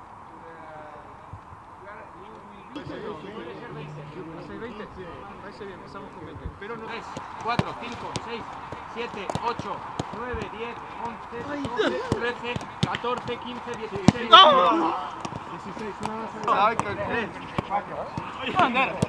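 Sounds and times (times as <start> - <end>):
players shouting: 2.8 - 6.0
boots kicking football: 7.1 - 14.3.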